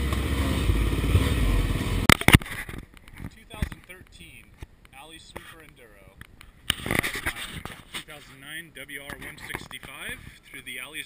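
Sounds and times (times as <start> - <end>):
man talking: 3.3 - 6.2, 7.0 - 11.0.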